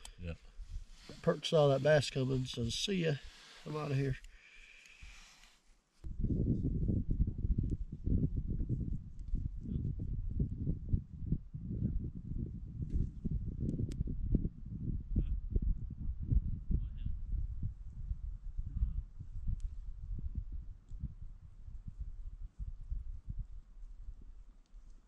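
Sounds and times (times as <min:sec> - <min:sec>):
wind buffeting microphone: 0:06.0 - 0:24.4.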